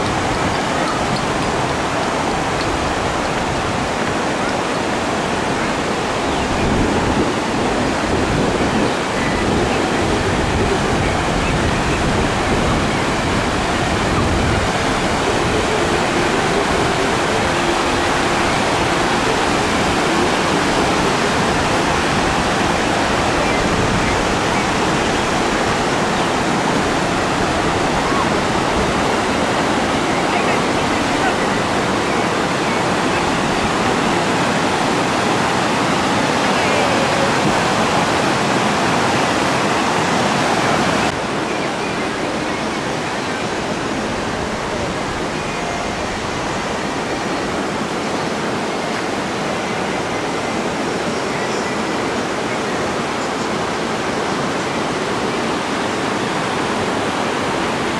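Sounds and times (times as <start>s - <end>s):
river water rushing over rocks: 0.0s - 57.9s.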